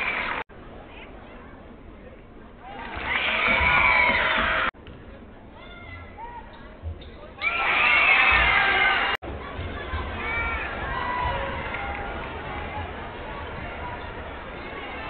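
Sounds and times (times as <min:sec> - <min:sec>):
crowd cheering: 0:00.0 - 0:00.4, 0:02.6 - 0:04.7, 0:07.4 - 0:15.0
crowd chatter: 0:00.0 - 0:15.0.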